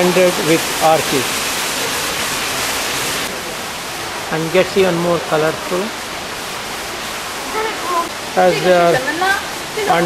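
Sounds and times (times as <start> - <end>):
running water: 0.0 - 10.0.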